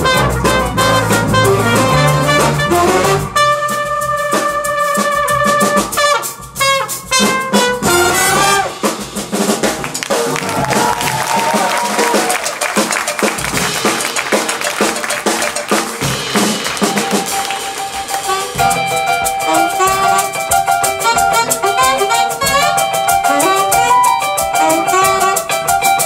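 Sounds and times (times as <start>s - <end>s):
trumpet solo: 0.0s - 9.0s, 18.0s - 26.0s
big band brass and saxophones: 0.0s - 26.0s
drum kit: 0.0s - 26.0s.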